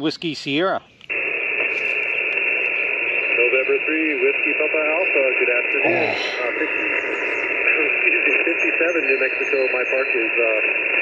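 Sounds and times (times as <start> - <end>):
radio static: 1.1 - 11.0
narrow-band radio speech: 2.4 - 11.0.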